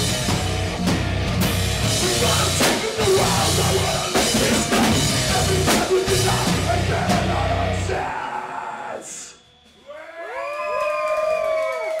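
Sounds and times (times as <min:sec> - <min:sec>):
live heavy rock song: 0:00.0 - 0:09.4
audience whooping and cheering: 0:09.8 - 0:12.0.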